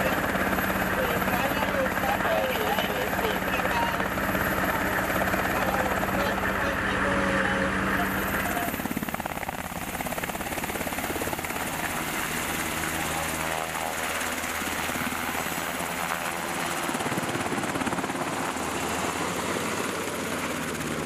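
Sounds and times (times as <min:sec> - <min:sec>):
helicopter engines and rotor: 0:00.0 - 0:21.0
helicopter rotor beat: 0:00.0 - 0:21.0.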